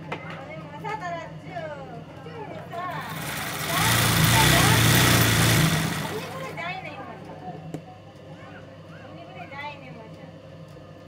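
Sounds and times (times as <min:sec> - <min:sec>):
sewing machine running fast: 0:02.8 - 0:06.6.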